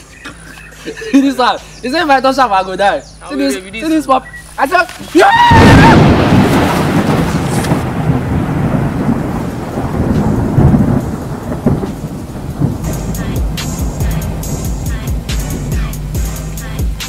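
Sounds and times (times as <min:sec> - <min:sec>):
thunder rumble: 0:05.4 - 0:16.4
music: 0:12.7 - 0:17.0.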